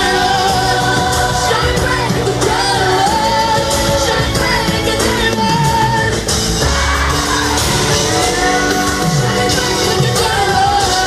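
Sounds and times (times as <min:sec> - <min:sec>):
live pop concert music: 0:00.0 - 0:11.0.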